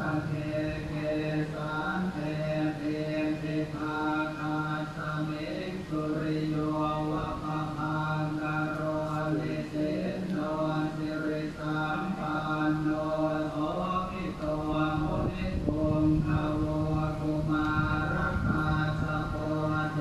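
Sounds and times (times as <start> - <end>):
low voice chanting: 0.0 - 20.0.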